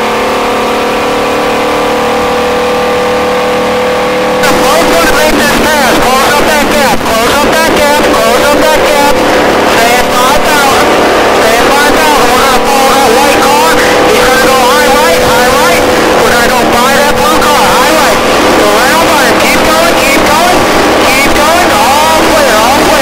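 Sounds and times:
race car engine at high speed: 0:00.0 - 0:23.0.

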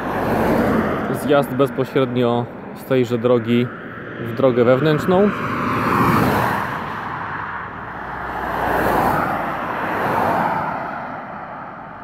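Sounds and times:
cars passing on asphalt: 0:00.0 - 0:12.0.

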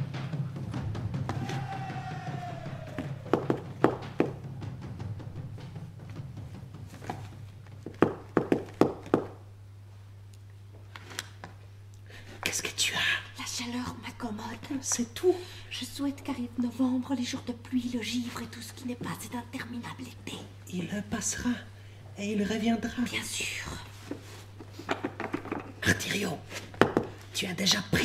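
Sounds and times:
sharp knocks: 0:00.2 - 0:06.7, 0:07.8 - 0:09.4.

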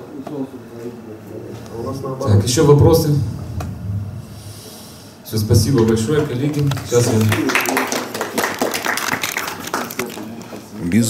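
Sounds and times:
audience applauding: 0:05.8 - 0:10.6.

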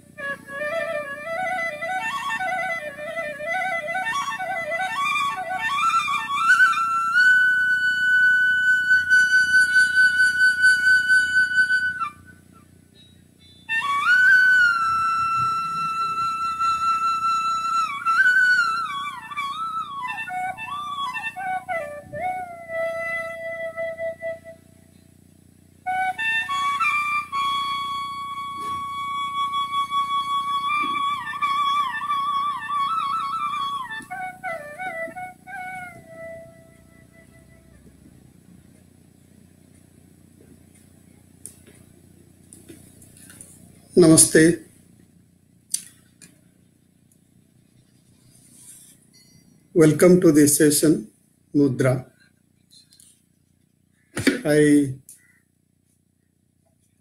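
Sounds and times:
flute long held note: 0:00.0 - 0:12.6, 0:13.4 - 0:24.9, 0:25.8 - 0:38.0.

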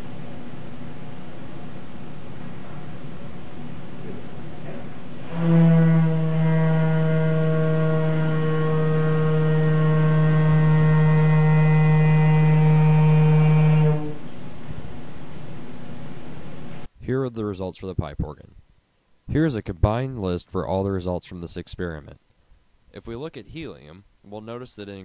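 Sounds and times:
organ pipe low note: 0:02.3 - 0:16.9.

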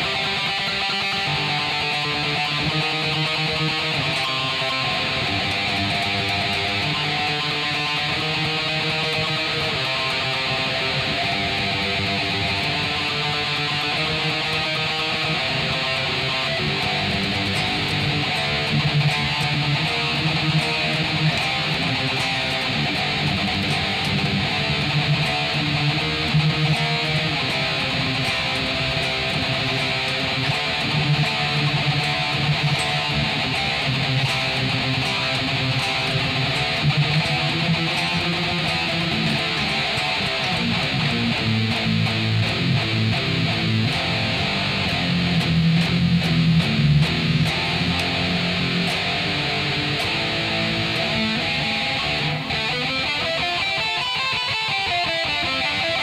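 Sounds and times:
electric guitar riff with delay: 0:00.0 - 0:56.0.

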